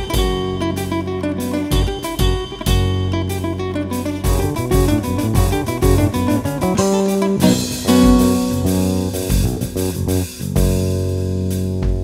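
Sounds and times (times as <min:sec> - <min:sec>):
classical guitar playing: 0:00.0 - 0:10.2
electric bass: 0:00.0 - 0:12.0.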